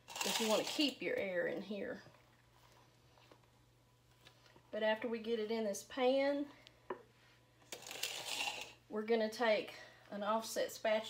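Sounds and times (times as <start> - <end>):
batter scraped from metal bowl: 7.8 - 8.8.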